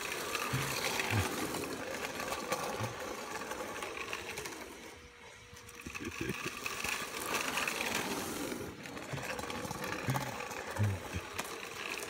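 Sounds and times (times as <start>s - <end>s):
electric motors whirring: 0.0s - 12.0s
wheels rolling on asphalt: 0.0s - 12.0s.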